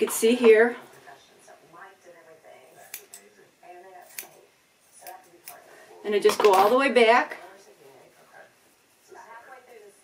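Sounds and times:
scissors cutting hair: 2.7s - 3.3s, 3.9s - 5.6s.

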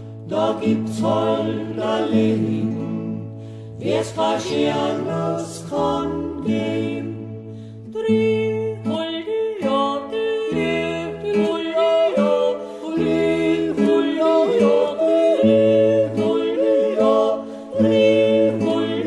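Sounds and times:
vocal group yodelling in harmony: 0.2s - 7.4s, 10.4s - 19.0s.

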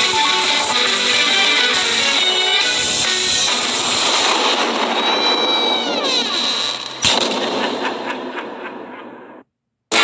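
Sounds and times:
dense rushing noise: 3.4s - 6.4s
loud bang: 3.4s - 10.0s
falling whistle: 4.8s - 7.0s.

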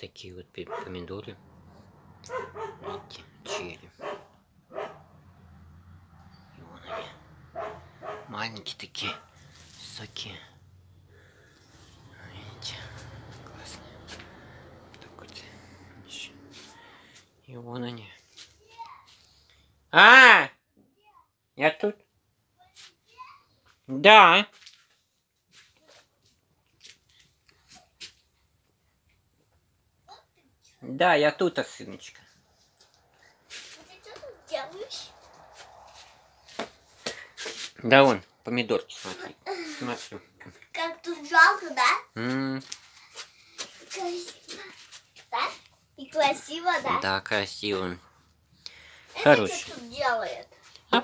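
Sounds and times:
dog barking: 0.7s - 1.1s, 2.2s - 5.2s, 6.7s - 8.4s, 9.0s - 9.4s.

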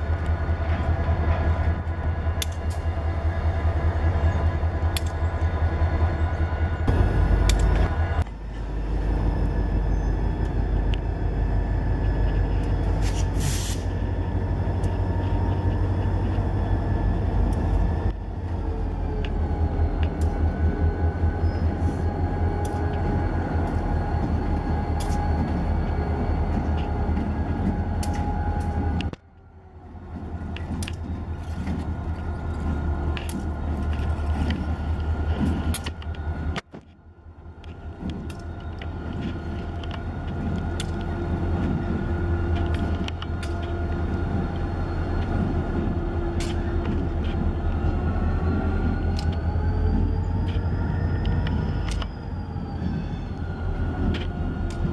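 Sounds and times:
diesel locomotive engine drone: 0.0s - 54.9s
sharp air hiss: 13.0s - 13.9s
wheels clicking over rail joints: 30.0s - 54.9s.

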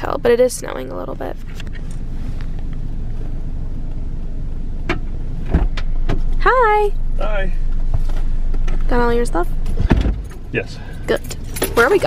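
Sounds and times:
car engine idling: 0.0s - 12.0s
car door opening click and thump: 4.8s - 6.4s, 9.6s - 10.4s.

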